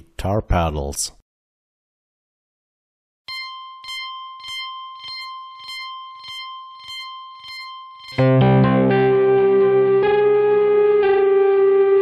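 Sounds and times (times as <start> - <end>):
synthesizer high note with clicky pluck: 4.4 - 10.2
distorted low power chord: 8.2 - 12.0.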